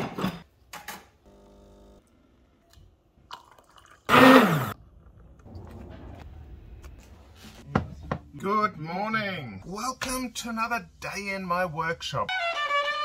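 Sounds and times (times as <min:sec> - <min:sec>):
espresso machine pump humming: 0:01.3 - 0:02.0
coffee slurp: 0:02.7 - 0:05.9.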